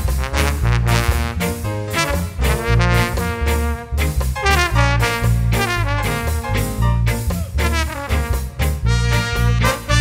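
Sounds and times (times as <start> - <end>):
bass line: 0.0 - 10.0
trumpet and trombone playing: 0.0 - 10.0.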